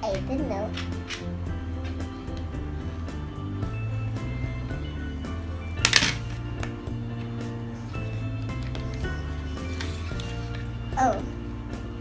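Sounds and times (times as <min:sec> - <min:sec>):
background music with sustained notes: 0:00.0 - 0:12.0
plastic toy clattering on table: 0:05.8 - 0:06.3.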